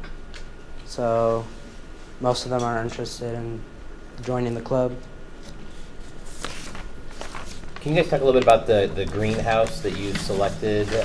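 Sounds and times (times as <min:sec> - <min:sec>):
man speaking: 0:00.9 - 0:01.6, 0:07.8 - 0:11.0.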